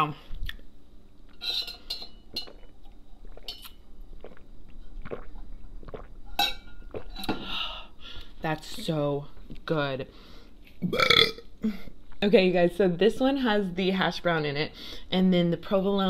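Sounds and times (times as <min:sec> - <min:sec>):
person sipping drink: 0:01.8 - 0:08.3.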